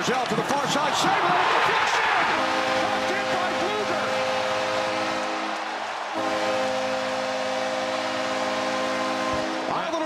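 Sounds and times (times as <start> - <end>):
crowd cheering: 0.0 - 10.0
arena goal horn: 1.0 - 10.0.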